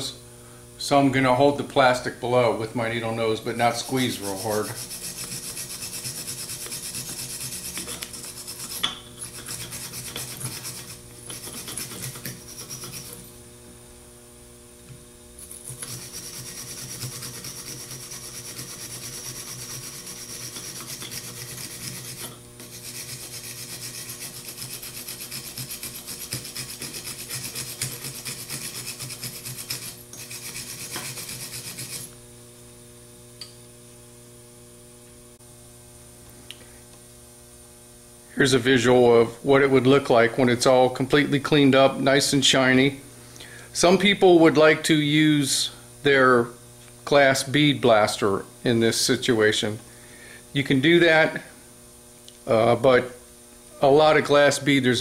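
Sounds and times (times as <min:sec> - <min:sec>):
wire brush scrubbing metal: 0:03.1 - 0:13.3, 0:15.4 - 0:32.1.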